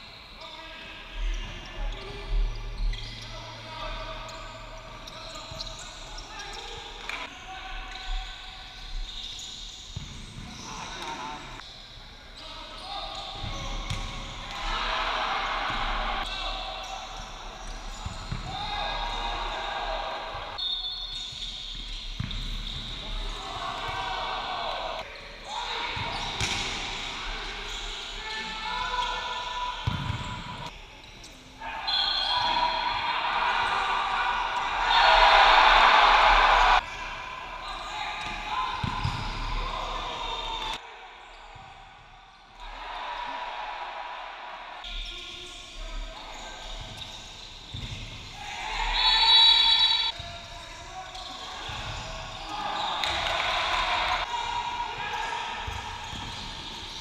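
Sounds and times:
people shouting: 14.4 - 17.3, 18.0 - 20.6, 23.3 - 26.2, 31.6 - 41.2, 42.6 - 44.8, 48.4 - 50.1.

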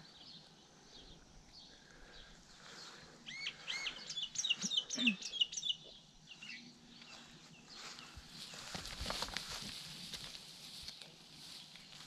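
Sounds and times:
songbird singing: 0.0 - 12.0
rustling in grass: 7.0 - 12.0.

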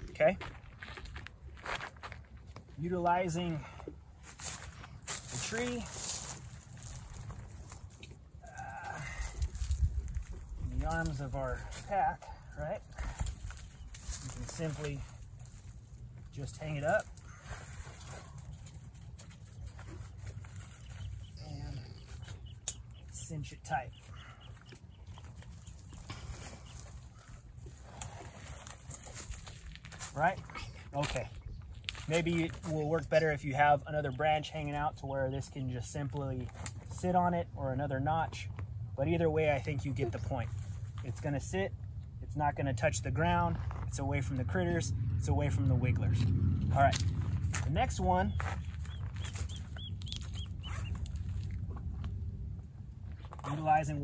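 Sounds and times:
steady low rumble: 0.0 - 54.0
backpack straps rustling: 24.5 - 30.2.

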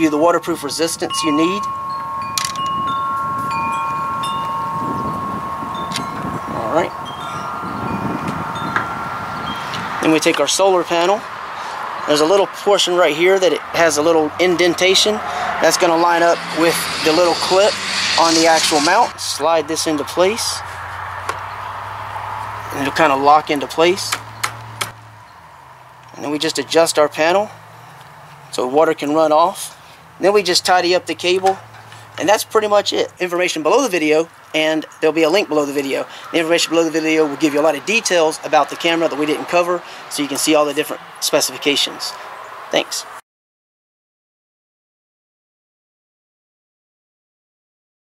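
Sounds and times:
metal wind chimes ringing: 0.0 - 11.4, 12.0 - 20.7, 22.5 - 24.6, 25.2 - 27.6, 35.3 - 38.6
wind on microphone: 1.0 - 10.2, 13.9 - 19.4.

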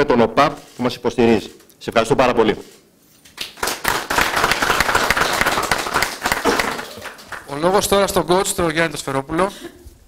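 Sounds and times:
audience applauding: 3.4 - 8.0.

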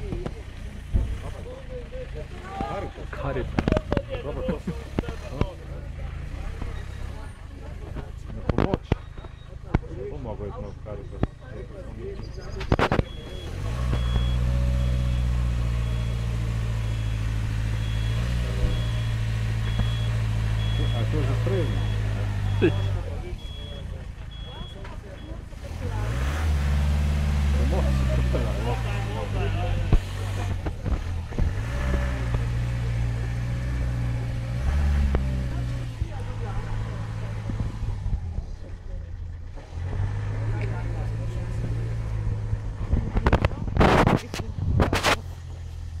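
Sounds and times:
voices talking: 0.0 - 45.7
van engine revving: 0.0 - 46.0
reversing beeper: 13.0 - 25.4.

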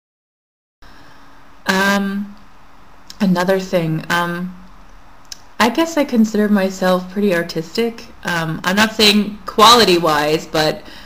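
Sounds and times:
faint room hiss: 0.8 - 11.0.

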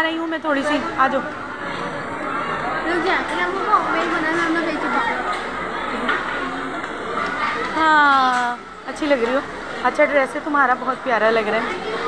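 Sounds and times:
indistinct background chatter: 0.0 - 12.0.

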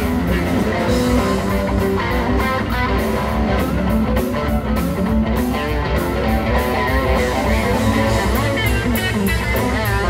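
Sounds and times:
bass line: 0.0 - 10.0
drums with cymbal strokes: 0.0 - 10.0
electric guitar notes: 0.0 - 10.0.

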